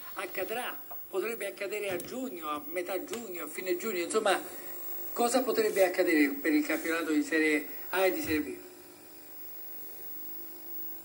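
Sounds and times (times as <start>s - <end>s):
faint electrical hum: 0.0s - 11.0s
television held tones: 0.0s - 11.0s.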